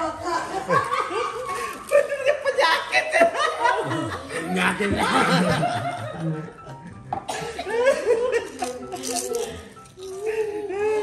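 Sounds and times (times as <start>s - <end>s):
people laughing: 0.0s - 11.0s.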